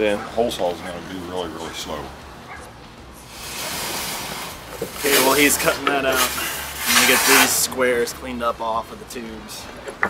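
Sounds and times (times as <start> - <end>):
cutting torch hissing: 3.2 - 7.7.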